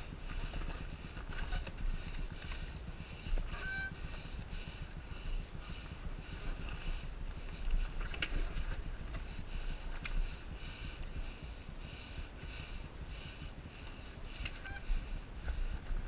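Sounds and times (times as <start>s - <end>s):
dirt bike engine at low revs: 0.0s - 16.0s.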